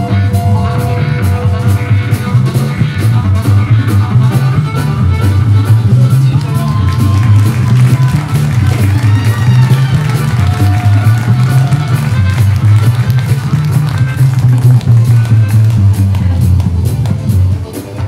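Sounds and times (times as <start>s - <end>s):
upright bass line: 0.0s - 18.0s.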